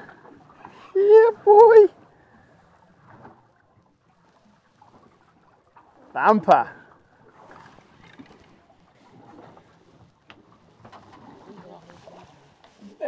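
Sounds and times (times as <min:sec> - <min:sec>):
water lapping around boat: 0:00.0 - 0:13.0.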